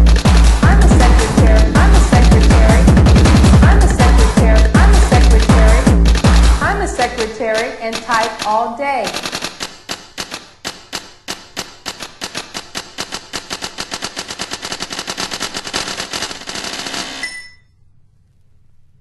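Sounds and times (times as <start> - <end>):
manual typewriter typing: 5.4 - 17.4
typewriter bell ringing: 12.2 - 17.7.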